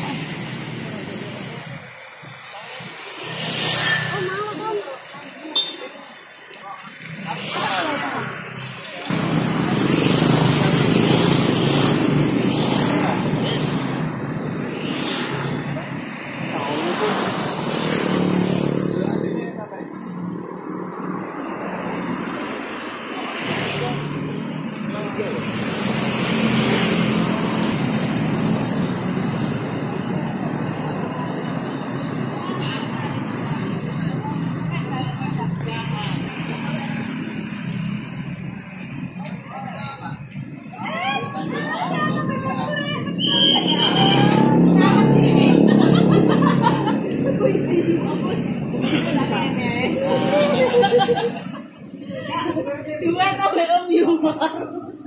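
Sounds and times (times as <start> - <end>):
people chattering: 0.0 - 55.0
road traffic and motorbikes: 0.0 - 55.0.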